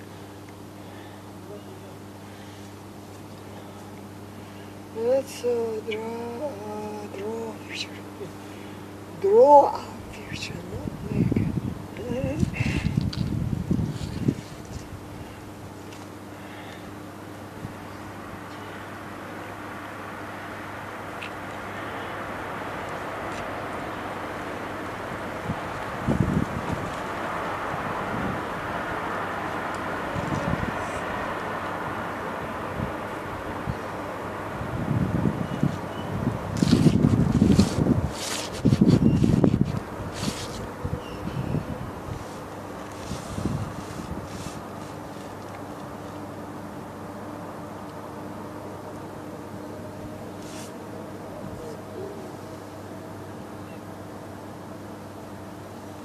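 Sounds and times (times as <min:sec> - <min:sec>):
steady low hum: 0:00.0 - 0:56.0
wind buffeting microphone: 0:10.4 - 0:15.4, 0:25.0 - 0:44.8.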